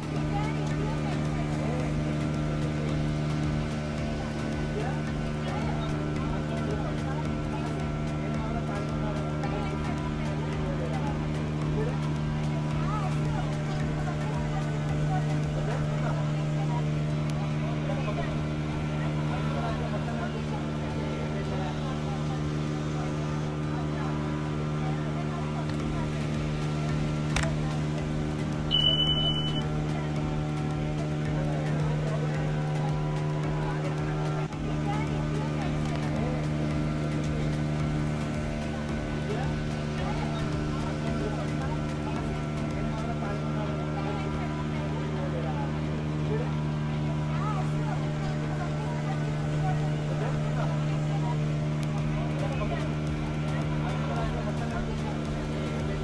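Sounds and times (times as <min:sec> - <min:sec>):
ferry engine humming: 0:00.0 - 0:56.0
indistinct passenger chatter: 0:00.0 - 0:56.0
short high beep: 0:28.7 - 0:29.7.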